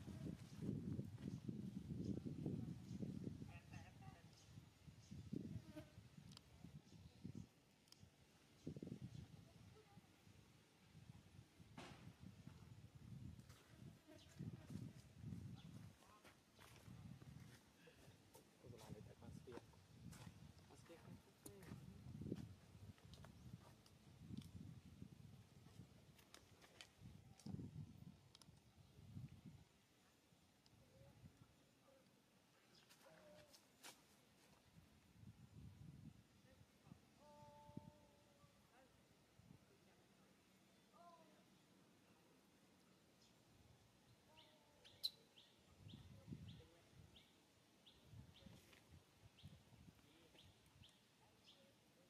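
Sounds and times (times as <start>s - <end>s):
faint sharp clicks: 28.3s - 28.7s.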